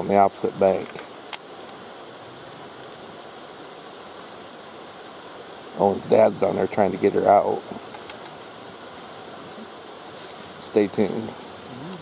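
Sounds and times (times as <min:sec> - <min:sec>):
constant hiss-like rush: 0:00.0 - 0:12.0.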